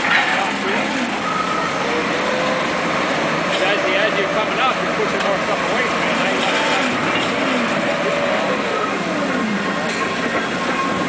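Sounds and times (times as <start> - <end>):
heavy machinery gearing running: 0.0 - 11.0.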